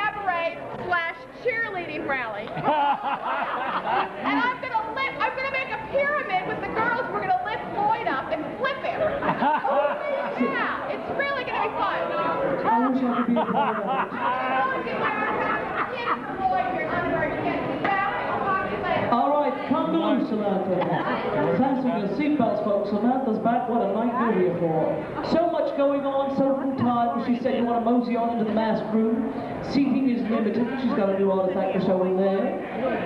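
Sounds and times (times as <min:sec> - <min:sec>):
woman talking: 0:00.0 - 0:02.6, 0:04.2 - 0:09.2, 0:09.9 - 0:13.1, 0:14.5 - 0:19.2
crowd chatter: 0:00.0 - 0:33.0.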